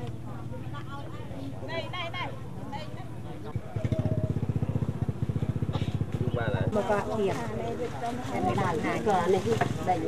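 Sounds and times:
voices: 0.0s - 10.0s
motorcycle engine puttering: 3.4s - 10.0s.

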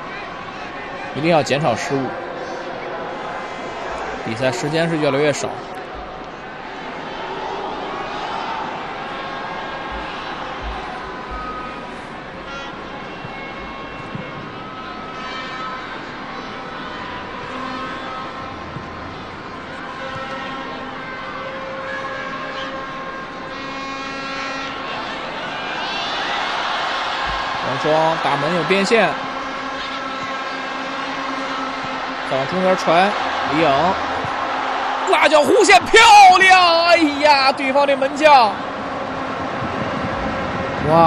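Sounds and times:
spectators shouting: 0.0s - 41.0s
stadium crowd hubbub: 0.0s - 41.0s.

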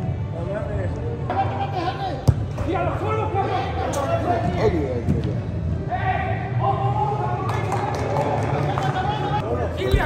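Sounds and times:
soccer ball being kicked: 2.2s - 2.6s.

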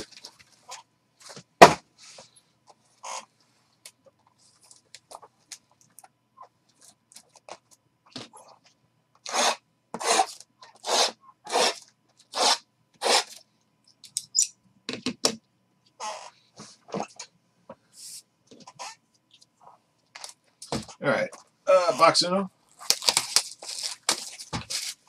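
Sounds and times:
cardboard rustling: 22.8s - 25.0s
cardboard tearing: 22.8s - 25.0s.

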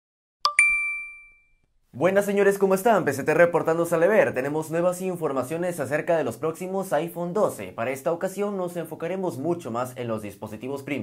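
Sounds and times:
two-note bell chime: 0.5s - 1.6s.

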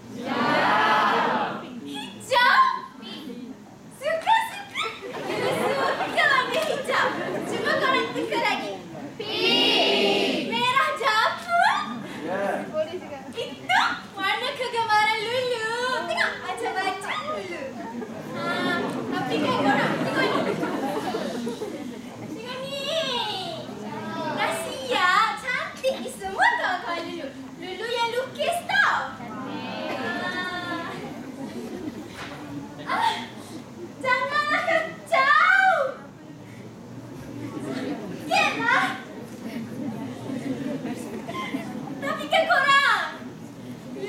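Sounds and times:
murmur of voices: 0.0s - 44.0s.

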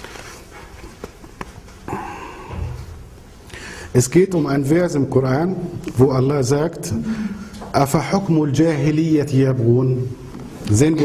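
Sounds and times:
book pages rustling: 0.0s - 1.9s.

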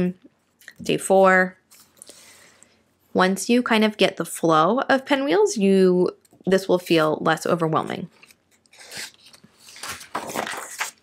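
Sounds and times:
paper pages rustling: 8.2s - 11.0s.

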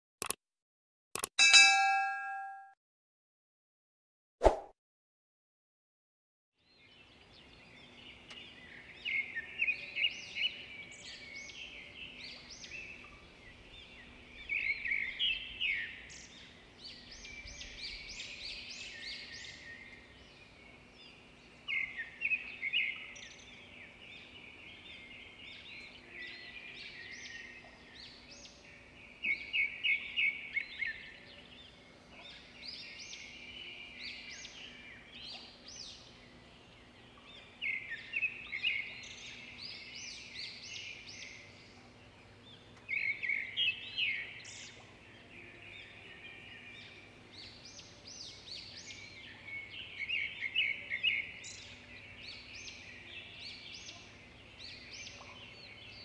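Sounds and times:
songbird trills: 1.4s - 2.7s, 6.8s - 56.0s.

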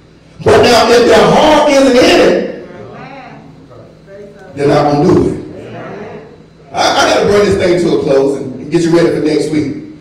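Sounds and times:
man preaching through microphone: 0.4s - 2.6s, 4.2s - 5.5s, 6.7s - 9.9s.

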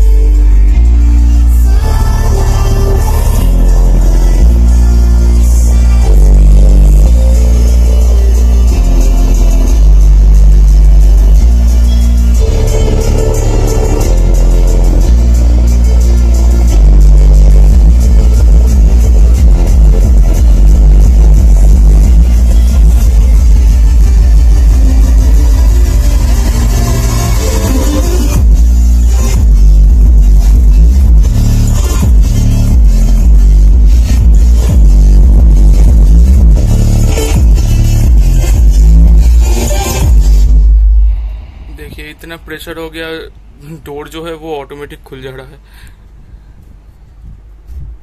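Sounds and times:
loud bass-heavy music from subwoofers: 0.0s - 45.4s, 46.0s - 48.0s.

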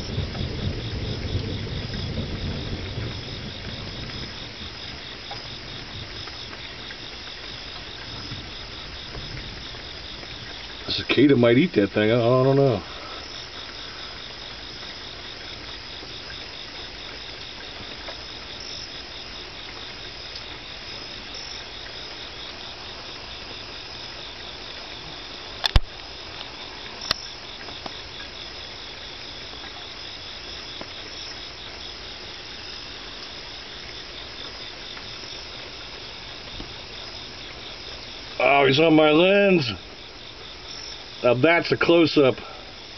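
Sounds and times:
night insects chirping: 0.0s - 42.9s.

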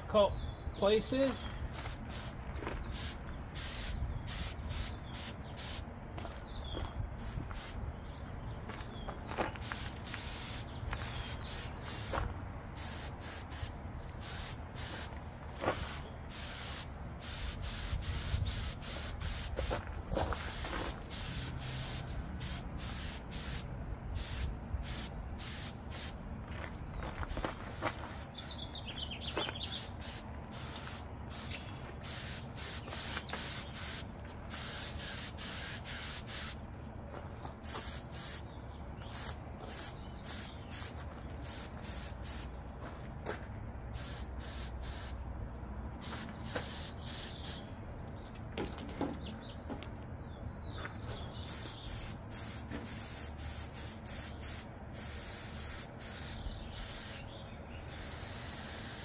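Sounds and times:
paint spray gun hissing: 1.7s - 5.9s, 7.2s - 7.8s, 9.6s - 12.2s, 12.8s - 15.1s, 15.7s - 26.2s, 29.2s - 36.6s, 37.6s - 38.5s, 39.1s - 42.5s, 44.0s - 45.2s, 46.0s - 47.6s, 51.4s - 59.0s.

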